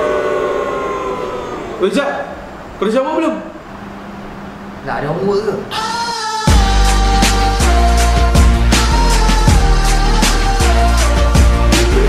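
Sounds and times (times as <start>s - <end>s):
person holding long vowel: 5.7s - 12.0s.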